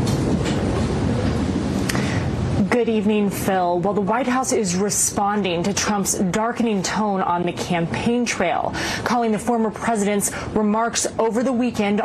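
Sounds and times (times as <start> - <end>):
loud steady rumbling: 0.0 - 12.0.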